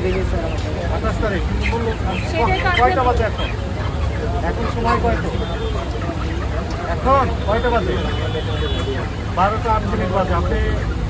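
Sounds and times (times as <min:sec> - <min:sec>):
crowd noise: 0:00.0 - 0:11.0
people talking: 0:00.0 - 0:11.0.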